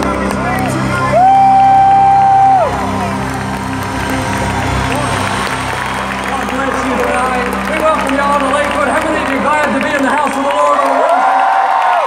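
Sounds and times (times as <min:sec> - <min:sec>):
congregation: 0:00.0 - 0:12.0
worship music: 0:00.0 - 0:12.0.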